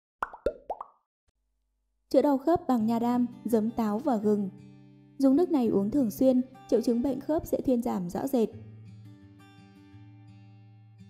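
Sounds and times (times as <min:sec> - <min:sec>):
bubbly plop sound effects: 0:00.2 - 0:01.0.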